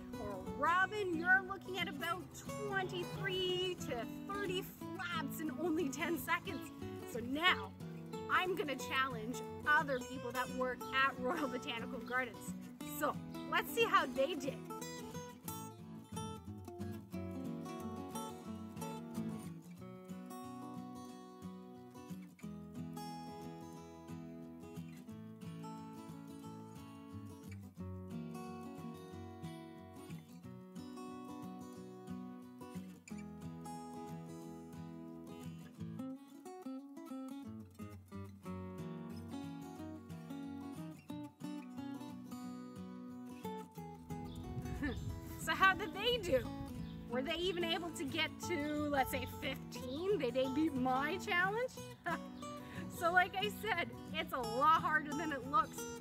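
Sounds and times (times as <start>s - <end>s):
strummed acoustic guitar music: 0.0s - 56.0s.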